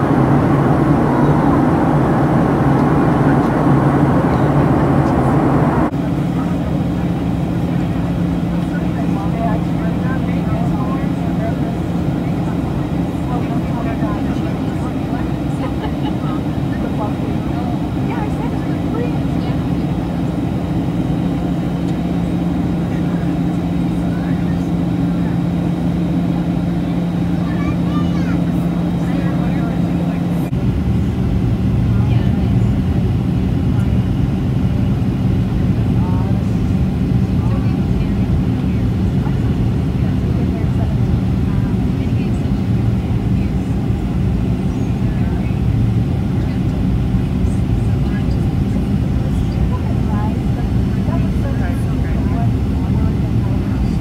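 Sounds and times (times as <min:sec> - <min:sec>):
low rumble: 0:00.0 - 0:27.4
airplane cabin engine noise: 0:00.0 - 0:54.0.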